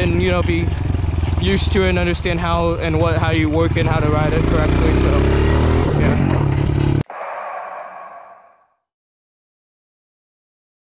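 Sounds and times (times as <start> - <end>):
short rushing sound: 7.0 - 8.7.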